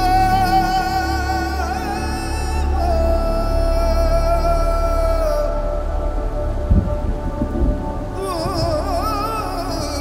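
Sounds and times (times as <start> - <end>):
steady rain: 0.0 - 10.0
low thunder rumbles: 6.6 - 9.0.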